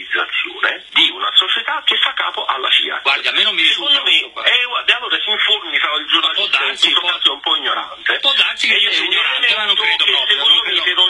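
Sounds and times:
men talking over a phone line: 0.0 - 11.0.

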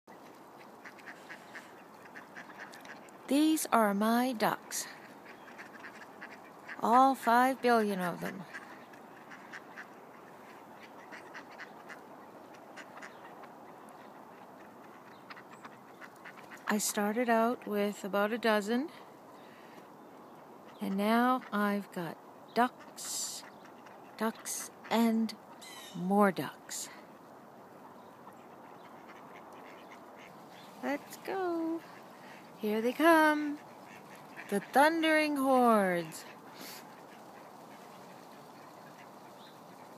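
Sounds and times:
ducks quacking: 0.1 - 17.7, 18.7 - 39.9.

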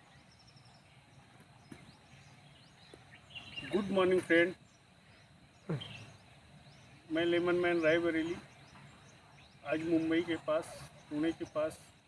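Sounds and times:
faint high bird chirps: 0.0 - 12.0.

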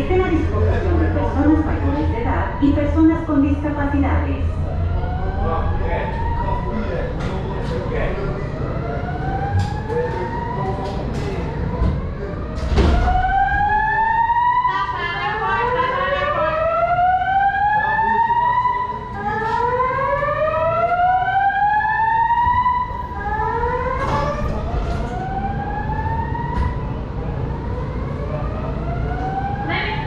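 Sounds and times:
low rumble: 0.0 - 10.0
emergency sirens wailing: 0.0 - 30.0.

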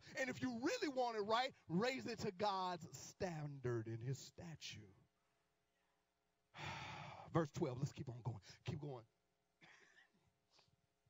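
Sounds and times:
man sighing into microphone: 6.6 - 7.3.

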